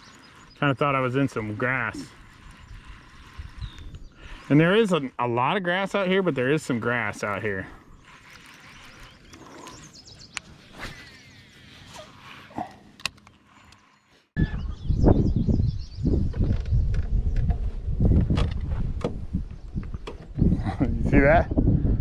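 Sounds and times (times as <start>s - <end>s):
wind buffeting microphone: 0.0s - 5.2s, 14.4s - 22.0s.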